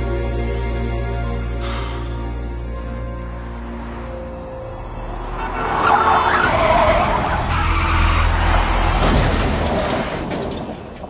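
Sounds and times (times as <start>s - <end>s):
tyres screeching: 5.1s - 10.9s.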